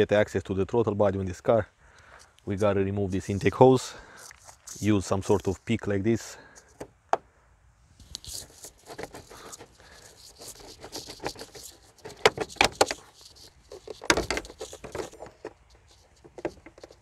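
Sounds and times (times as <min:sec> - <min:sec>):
plastic hose fittings clicking: 0:08.0 - 0:17.0.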